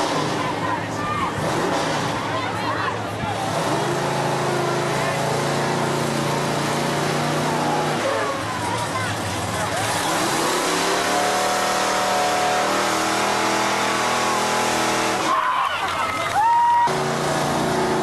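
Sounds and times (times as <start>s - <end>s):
fire truck engine running: 0.0s - 18.0s
voices shouting: 0.1s - 1.5s, 13.9s - 17.2s.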